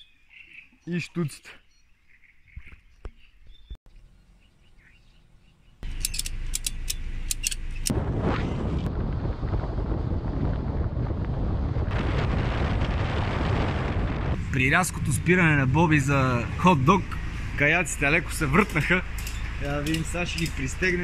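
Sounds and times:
wind buffeting cracks: 7.4s - 17.6s
wind rushing over microphone: 7.8s - 16.6s.

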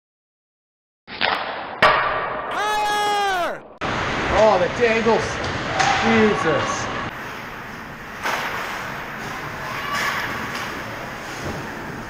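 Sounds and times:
ice rink sound: 1.1s - 12.0s.

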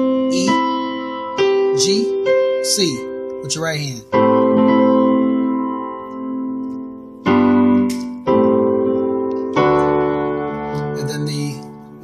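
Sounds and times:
digital piano chords: 0.0s - 12.0s.

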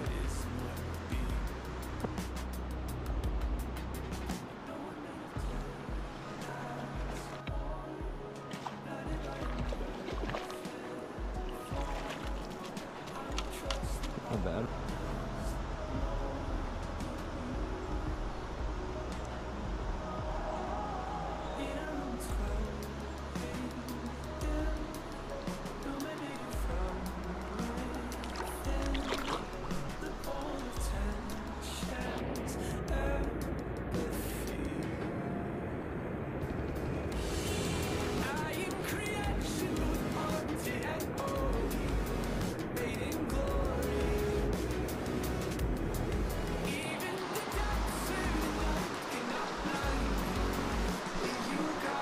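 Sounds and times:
song with bass and singing: 0.0s - 35.4s, 36.8s - 52.0s.

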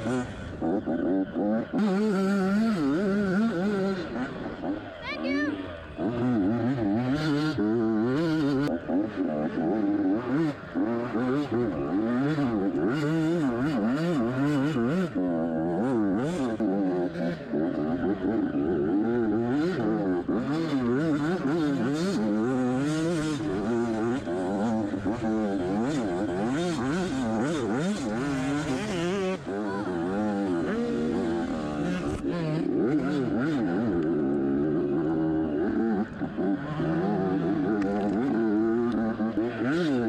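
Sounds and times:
dirt bike engine revving: 0.0s - 40.0s.

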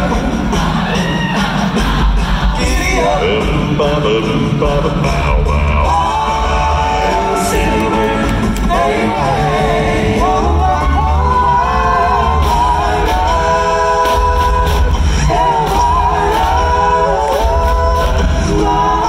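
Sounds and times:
male vocal group singing harmonies: 0.0s - 19.0s
beatboxed mouth percussion: 12.5s - 19.0s.

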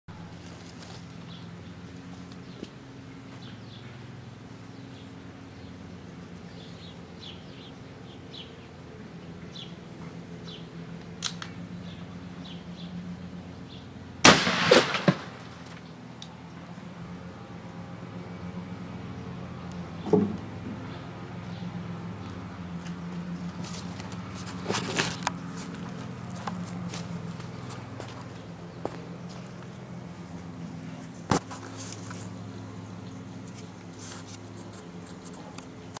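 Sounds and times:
steady low hum: 0.1s - 36.0s
gunshot: 14.2s - 15.5s.

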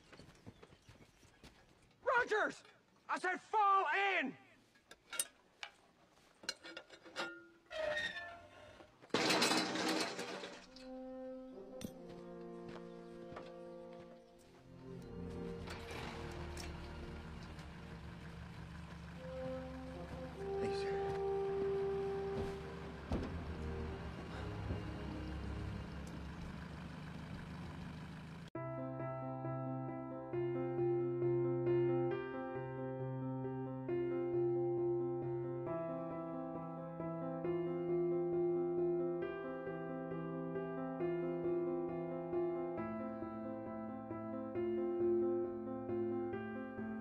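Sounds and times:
flagpole crashing down: 9.1s - 10.9s
piano-led music: 9.2s - 26.4s, 28.6s - 47.0s
orchestral music with brass: 14.7s - 17.8s, 19.2s - 25.9s.

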